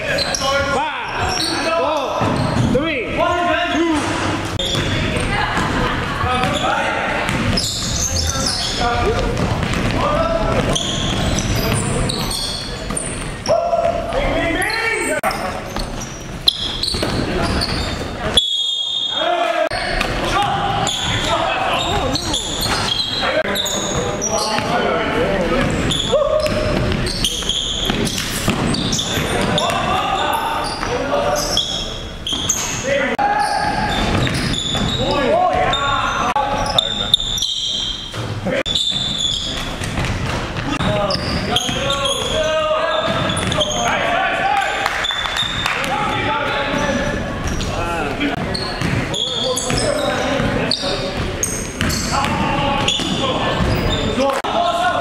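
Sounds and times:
players shouting and calling: 0.0 - 55.0
basketball bouncing on wooden floor: 7.2 - 8.1, 9.0 - 11.9.

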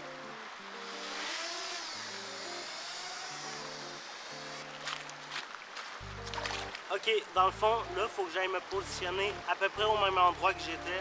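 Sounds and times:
music of slow held notes: 0.0 - 11.0
drone propellers whining: 0.7 - 4.7.

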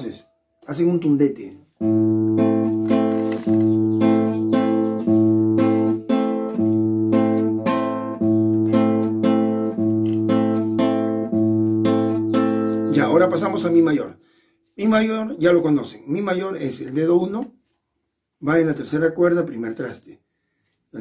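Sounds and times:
classical guitar waltz accompaniment: 1.8 - 13.4.

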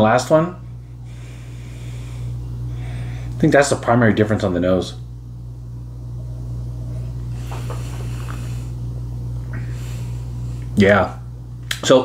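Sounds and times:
steady low hum: 0.0 - 12.0
noisy rush of breath: 0.8 - 3.4, 7.2 - 10.8.

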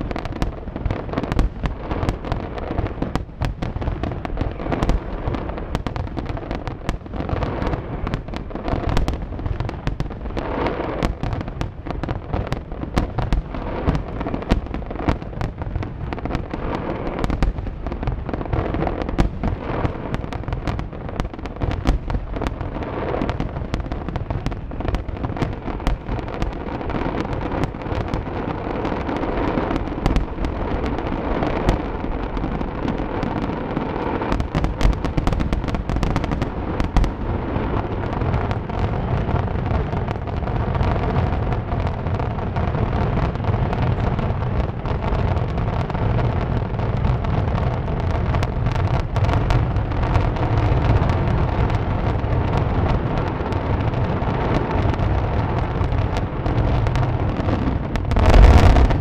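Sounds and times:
fireworks bursts and crackle: 0.0 - 59.0.

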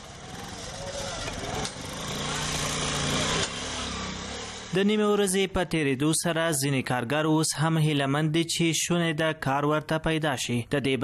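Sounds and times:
small motorcycle engine revving: 0.0 - 4.8
street noise: 0.0 - 11.0.

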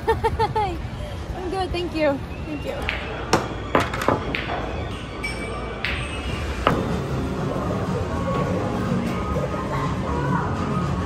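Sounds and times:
pool balls clacking: 2.8 - 7.3
background music: 4.2 - 11.0.

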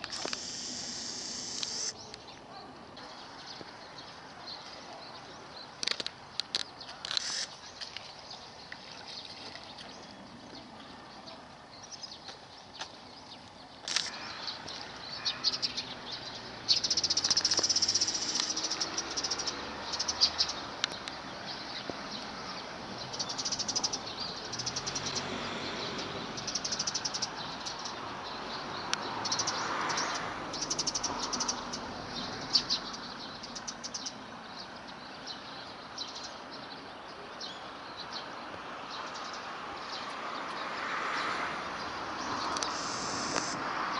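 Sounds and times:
small birds chirping: 0.0 - 43.6
outdoor background noise: 0.0 - 43.9.

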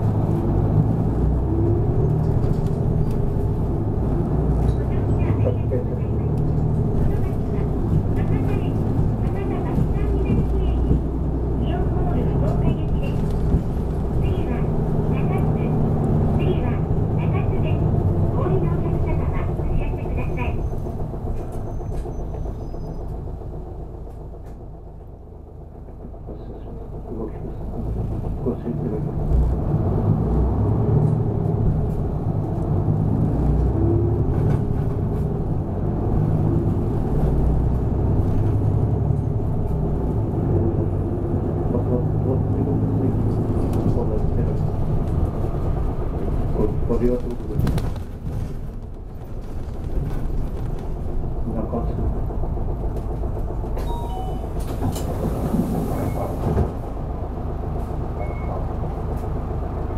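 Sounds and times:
bus engine and road rumble: 0.0 - 59.9.

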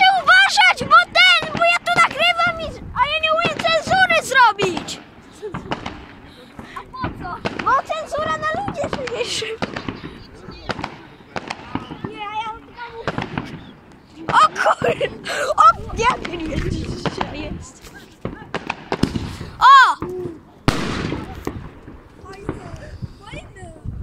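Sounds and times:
firecrackers crackling: 0.0 - 23.5
fireworks bangs: 0.0 - 23.5.

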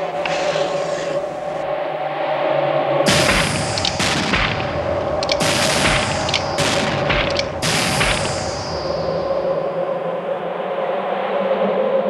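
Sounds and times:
steady low tone: 0.0 - 11.1.

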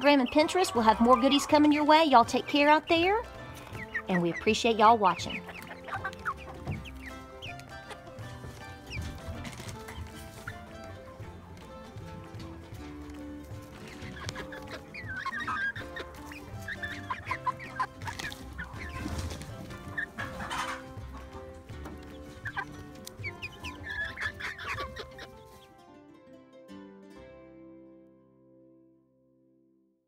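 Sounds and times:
chicks clucking and peeping: 0.0 - 25.7
soft background music: 0.0 - 29.2.

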